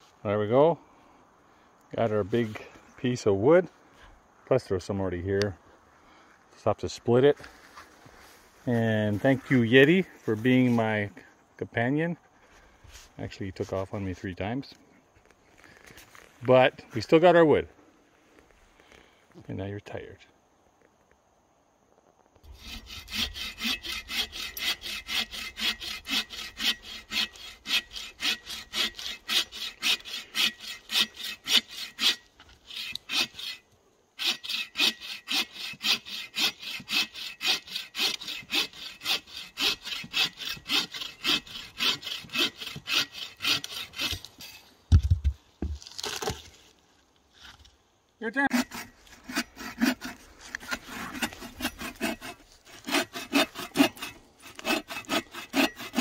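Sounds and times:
bow saw cutting log: 22.4 - 44.6, 48.4 - 56.0.

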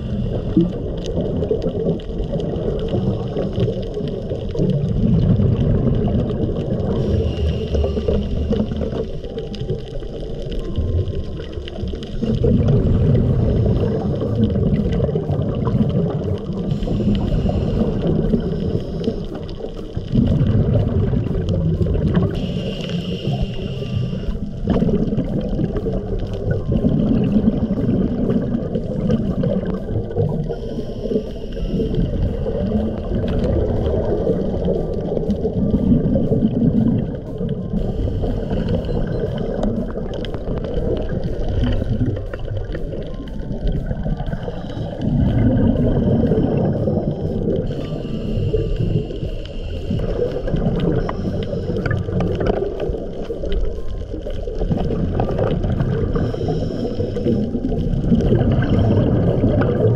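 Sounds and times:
faint regulator hiss: 0.0 - 1.4, 6.4 - 59.9
scuba regulator exhaled bubbles: 0.0 - 59.9.

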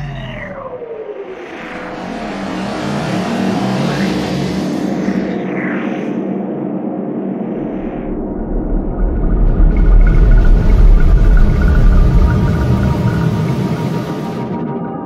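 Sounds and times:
whooshing swell: 1.1 - 14.8
low rumble: 6.2 - 14.7.

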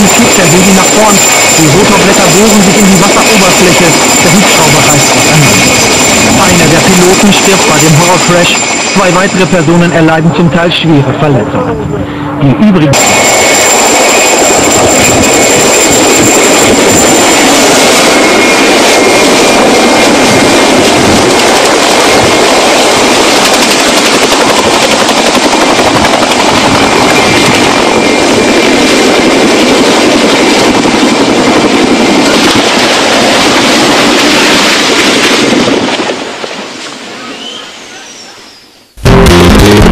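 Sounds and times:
helicopter engine and rotor: 0.0 - 36.5.

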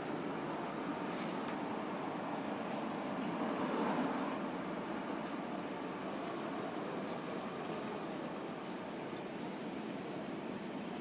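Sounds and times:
street ambience: 0.0 - 11.0.

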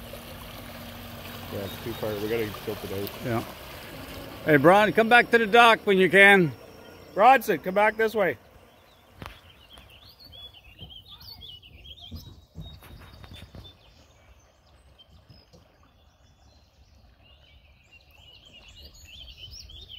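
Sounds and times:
bird warbling song: 1.2 - 19.9.

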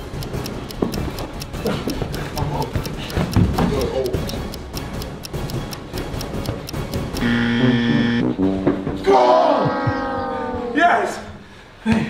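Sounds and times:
music with fast ticking beat: 0.0 - 8.3.

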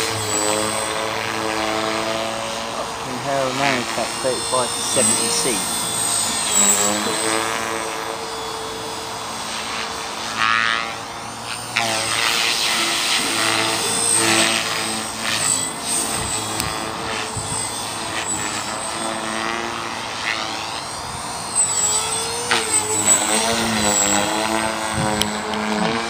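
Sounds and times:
rc helicopter rotor whine: 0.0 - 26.0.

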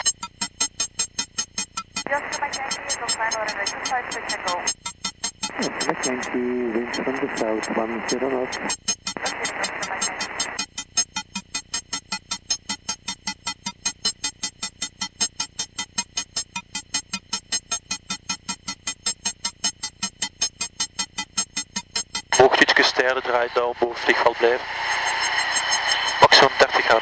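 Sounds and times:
person talking: 2.1 - 4.6, 5.6 - 8.6
faint intercom noise: 2.1 - 4.8, 5.6 - 10.5, 22.3 - 24.8, 26.1 - 27.0
rapid electronic pulses: 24.8 - 26.4.

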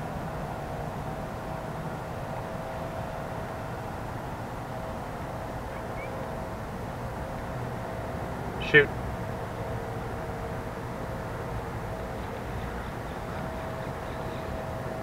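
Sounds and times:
faint continuous hum: 0.0 - 15.0.

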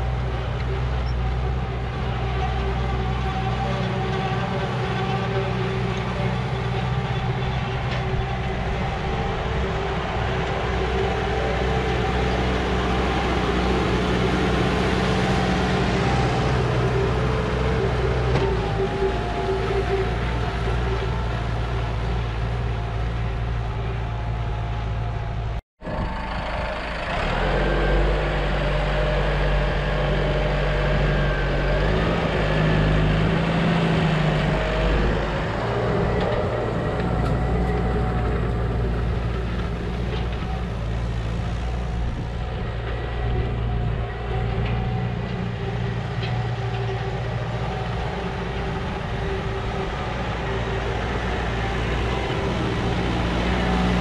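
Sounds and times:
tractor diesel engine under load: 0.0 - 54.0.

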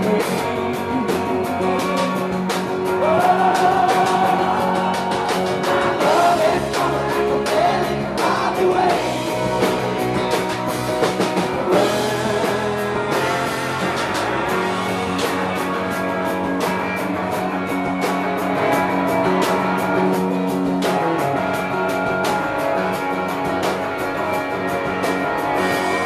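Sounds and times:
person singing: 0.0 - 9.8, 11.6 - 14.0
rock band playing live: 0.0 - 26.0.

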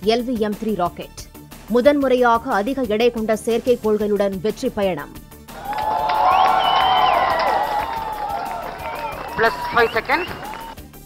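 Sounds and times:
crowd cheering and shouting: 5.5 - 10.8.

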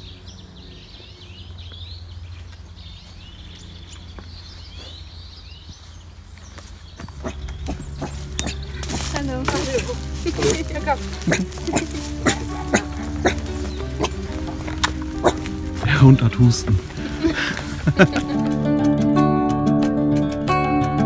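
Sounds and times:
songbirds chirping: 0.0 - 21.0
loud voices: 7.1 - 19.4.

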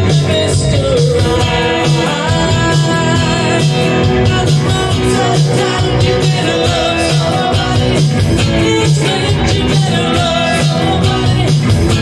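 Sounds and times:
live rock song: 0.0 - 12.0
person singing lead vocals: 0.0 - 12.0.

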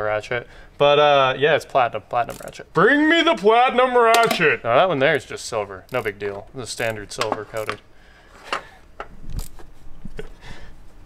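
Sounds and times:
ratchet clicks: 2.2 - 2.6, 5.9 - 7.0.

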